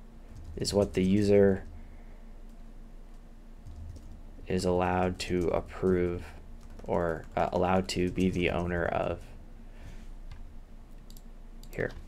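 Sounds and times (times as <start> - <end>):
keyboard and mouse clicks: 10.3 - 12.0.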